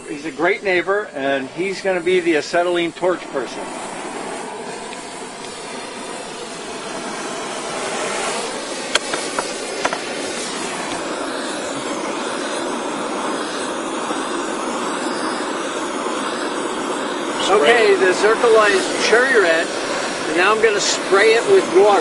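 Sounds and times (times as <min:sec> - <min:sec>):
torch flame hissing: 0:00.0 - 0:22.0.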